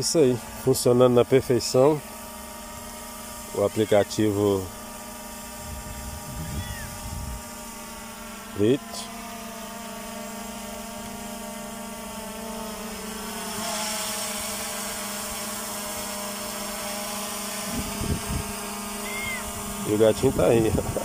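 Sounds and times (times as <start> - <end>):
drone propellers humming: 0.0 - 21.0.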